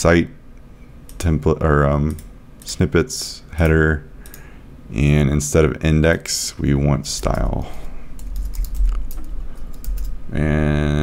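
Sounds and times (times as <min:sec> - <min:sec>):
computer keyboard typing: 0:08.2 - 0:10.2.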